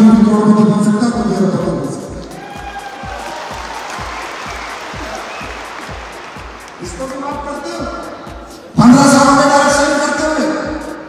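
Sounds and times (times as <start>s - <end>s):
music with bass-drum beat: 0.1s - 9.8s
audience applauding: 2.3s - 7.5s.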